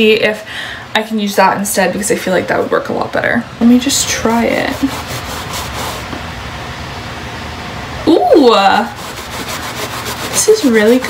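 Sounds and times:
eraser rubbing a sneaker: 4.3 - 6.2, 8.9 - 11.0.

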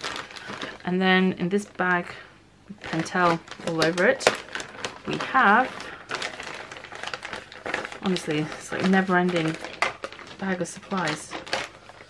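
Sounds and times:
plastic bag rustling and crinkling: 0.0 - 12.0.

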